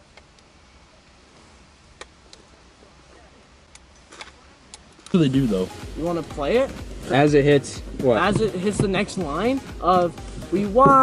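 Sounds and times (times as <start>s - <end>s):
car cabin hum: 5.2s - 11.0s.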